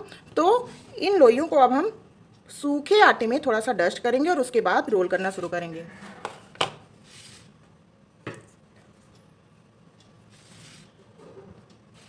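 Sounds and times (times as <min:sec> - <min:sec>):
soft brushing of flour: 0:07.0 - 0:07.6, 0:09.5 - 0:12.0.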